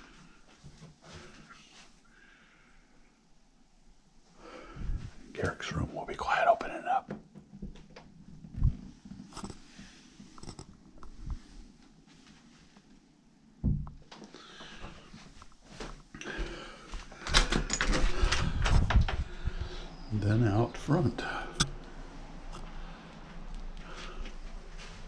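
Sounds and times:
person speaking softly: 0:05.3 - 0:07.1.

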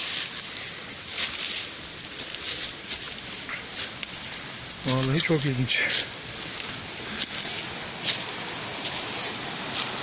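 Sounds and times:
footsteps through undergrowth: 0:00.0 - 0:10.0
mountain stream rushing: 0:00.0 - 0:10.0.

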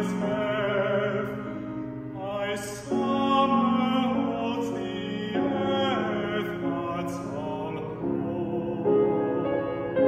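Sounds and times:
grand piano accompaniment: 0:00.0 - 0:10.0
man singing classical song: 0:00.0 - 0:10.0.

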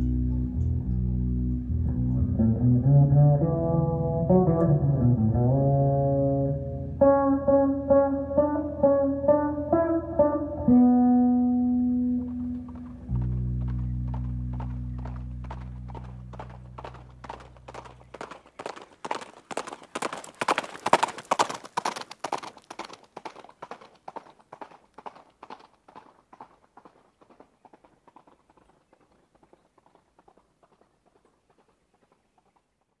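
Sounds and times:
electric bass note: 0:00.0 - 0:17.6
clip-clop hoof-like knocks: 0:12.1 - 0:33.0.

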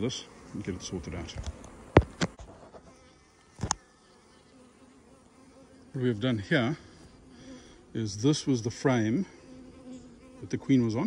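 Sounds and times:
bees buzzing: 0:00.0 - 0:11.0.

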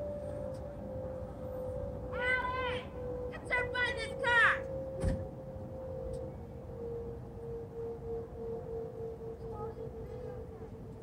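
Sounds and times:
high-pitched voiced exclamation: 0:02.2 - 0:04.6.

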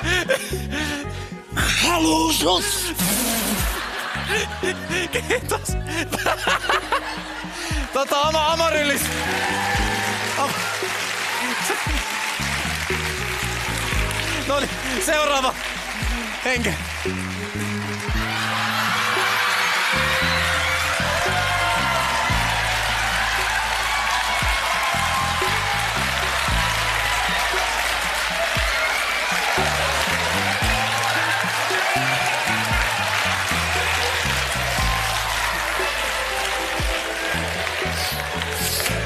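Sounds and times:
entrance music with bass line: 0:00.0 - 0:39.0
audience applause: 0:03.0 - 0:05.4, 0:06.2 - 0:39.0.

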